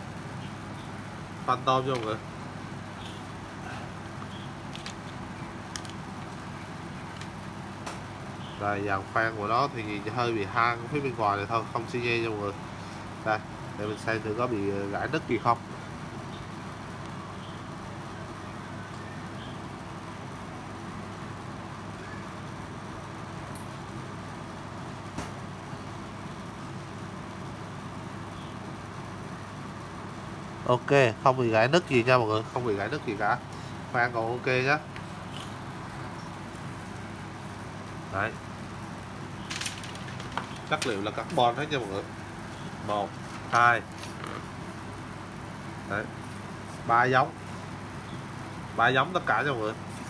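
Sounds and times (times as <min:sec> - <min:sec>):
low background hum: 0:00.0 - 0:50.0.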